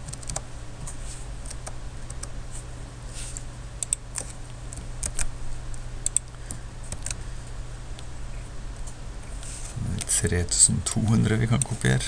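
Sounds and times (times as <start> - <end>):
keyboard and mouse clicks: 0.0 - 0.4, 3.8 - 5.3, 6.0 - 7.2
steady low hum: 0.0 - 12.0.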